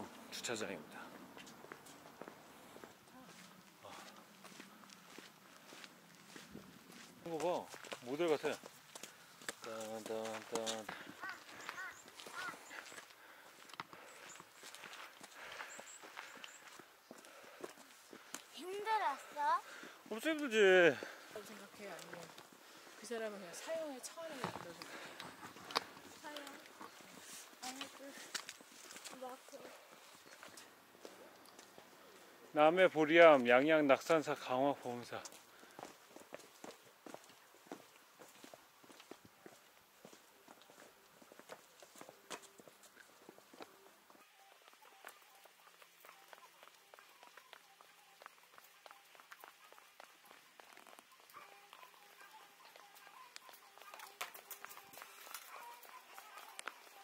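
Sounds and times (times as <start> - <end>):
faint footsteps: 0.0 - 57.0
faint voices: 9.6 - 15.6.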